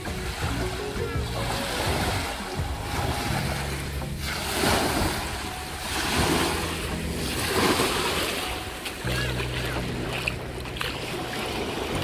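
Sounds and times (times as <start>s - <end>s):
small waves breaking on shore: 0.0s - 12.0s
soft background music: 0.0s - 12.0s.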